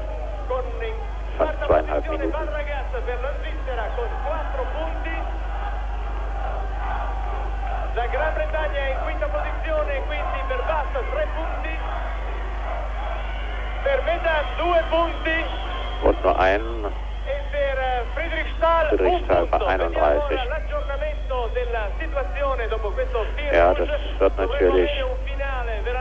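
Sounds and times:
steady low hum: 0:00.0 - 0:13.2, 0:13.9 - 0:26.0
man talking into a microphone: 0:01.4 - 0:02.8, 0:16.0 - 0:16.9, 0:18.6 - 0:20.5, 0:23.4 - 0:25.0
overlapping voices: 0:04.0 - 0:17.0, 0:18.6 - 0:20.5.

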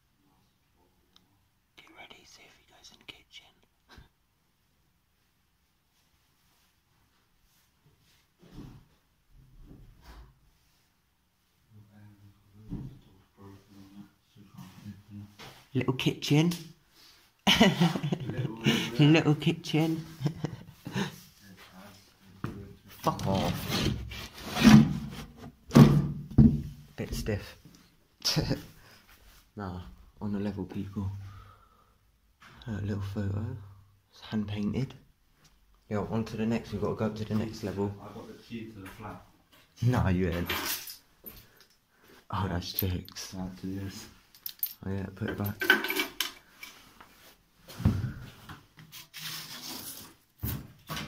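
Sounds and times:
wooden cabinet door knocking open: 0:25.7 - 0:26.7.

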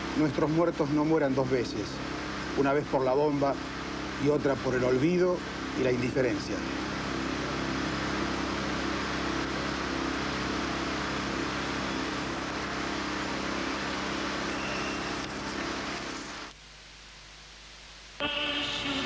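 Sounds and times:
faint steady tones: 0:00.0 - 0:19.0
faint hiss: 0:11.6 - 0:19.0.

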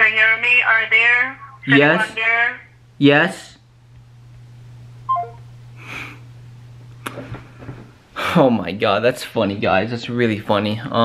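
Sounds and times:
low steady hum: 0:00.0 - 0:11.0
phone call-ended tones: 0:05.1 - 0:05.4.

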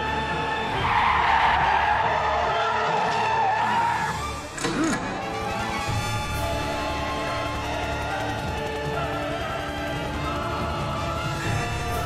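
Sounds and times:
background music: 0:00.0 - 0:12.0
tyres squealing in a skid: 0:00.7 - 0:05.2.

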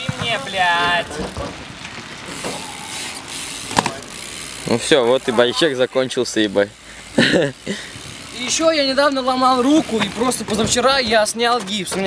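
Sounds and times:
bike tyres hissing on asphalt: 0:00.0 - 0:11.4.

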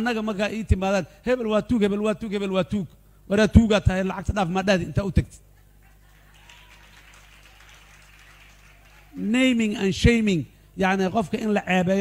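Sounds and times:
low electrical hum: 0:00.0 - 0:12.0
faint audience applause: 0:05.8 - 0:09.4.

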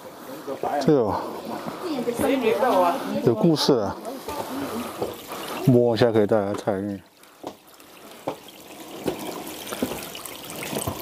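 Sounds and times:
water trickling: 0:00.0 - 0:11.0.

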